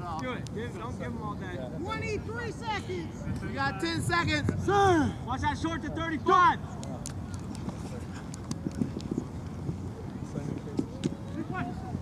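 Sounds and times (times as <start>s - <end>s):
wind noise on microphone: 3.2s - 5.2s, 6.7s - 12.0s.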